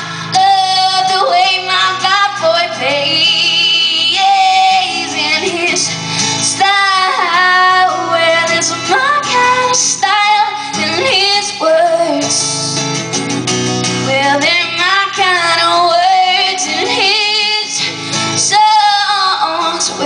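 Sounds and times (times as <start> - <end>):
woman singing with vibrato: 0.0 - 12.8, 14.0 - 20.0
strummed acoustic guitar: 0.0 - 20.0.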